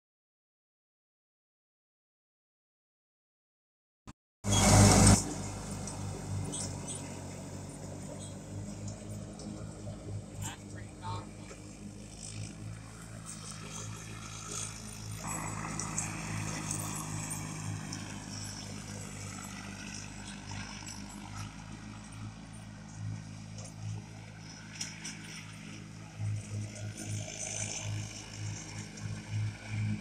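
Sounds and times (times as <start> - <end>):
lawn tractor engine drone: 4.4 - 30.0
high wavering whine: 4.5 - 30.0.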